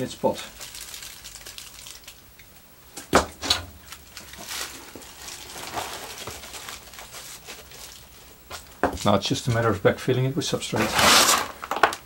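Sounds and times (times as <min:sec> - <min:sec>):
aluminium foil crinkling: 0:00.0 - 0:02.7, 0:03.5 - 0:09.6, 0:10.7 - 0:12.0.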